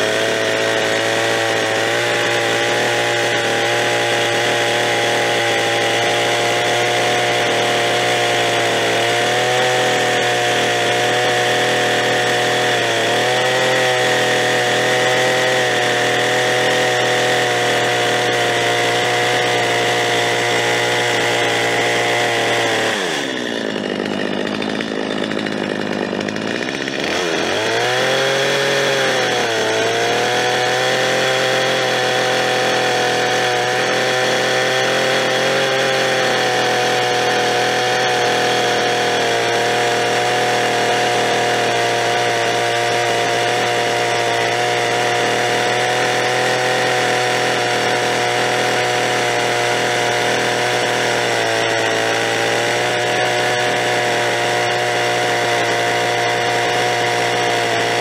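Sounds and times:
chainsaw cutting log: 0.0s - 58.0s.

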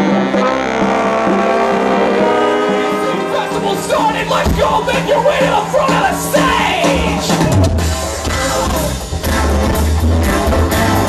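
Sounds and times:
brass band sustained notes: 0.0s - 11.0s.

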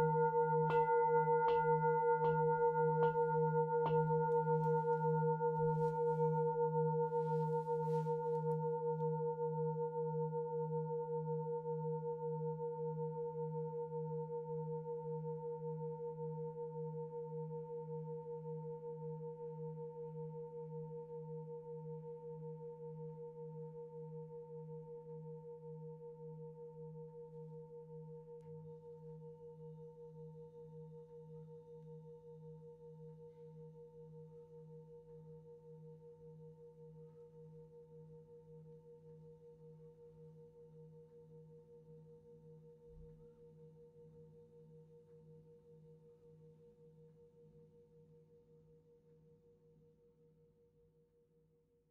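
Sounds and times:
singing bowl ringing: 0.0s - 7.4s.

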